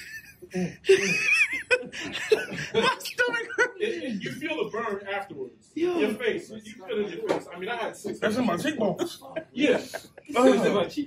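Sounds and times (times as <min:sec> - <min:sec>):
men laughing: 0:00.0 - 0:04.4, 0:08.8 - 0:10.8.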